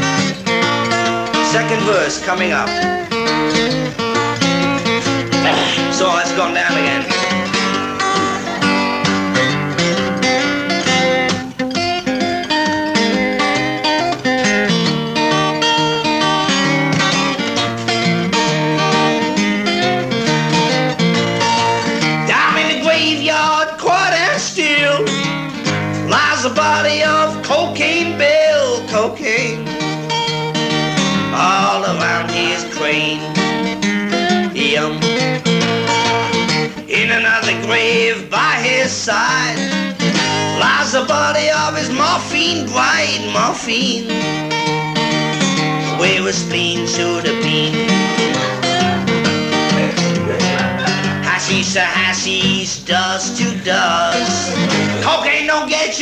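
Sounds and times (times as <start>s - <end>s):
acoustic guitar picking: 0.0s - 56.0s
person singing: 5.4s - 8.9s, 22.2s - 25.3s, 26.0s - 29.8s, 31.2s - 33.4s, 34.1s - 35.2s, 36.8s - 39.7s, 40.3s - 44.3s, 45.4s - 56.0s.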